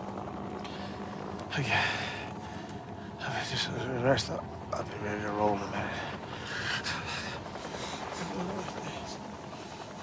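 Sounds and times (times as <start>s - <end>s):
man breathing laboriously: 0.6s - 3.2s, 5.9s - 8.4s.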